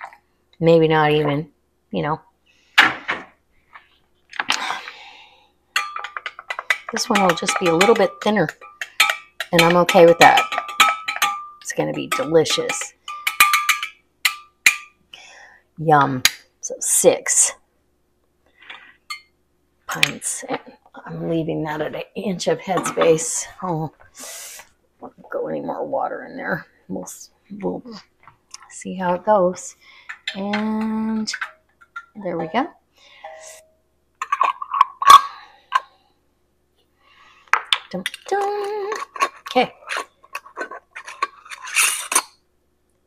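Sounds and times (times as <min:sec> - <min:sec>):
metal funnel clinking on glass jar: 0:05.8 - 0:14.9.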